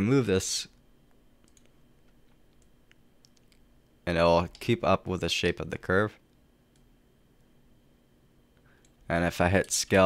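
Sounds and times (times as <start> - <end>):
computer mouse clicks: 1.4 - 3.7, 6.3 - 6.9
person speaking: 4.0 - 6.2, 9.1 - 10.0.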